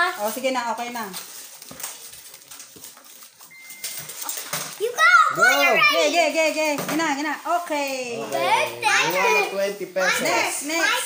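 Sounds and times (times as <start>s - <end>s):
paper banknotes rustling: 0.0s - 6.6s
thin high tone: 3.4s - 4.5s.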